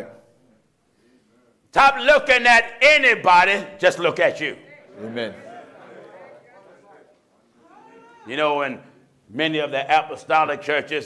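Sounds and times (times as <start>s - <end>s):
congregation calling out responses: 1.8s - 9.1s.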